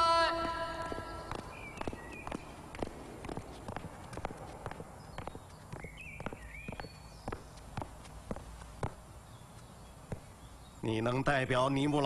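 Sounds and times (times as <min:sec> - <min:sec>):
footsteps on hard floor: 0:00.8 - 0:09.0.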